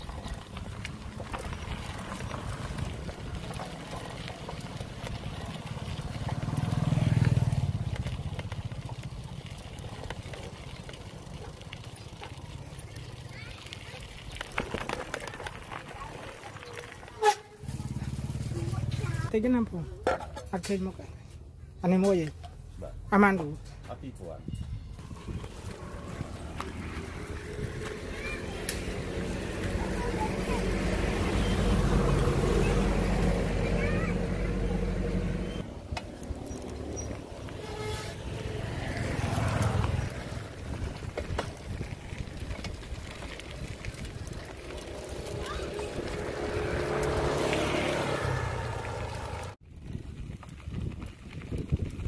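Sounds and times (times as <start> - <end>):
engine rumbling: 0.0 - 52.0
road and rolling noise: 0.0 - 52.0
vehicle engine running: 25.0 - 41.2.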